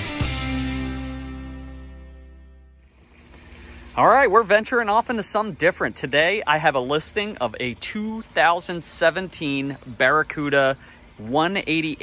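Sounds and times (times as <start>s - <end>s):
faint background hiss: 2.8s - 12.0s.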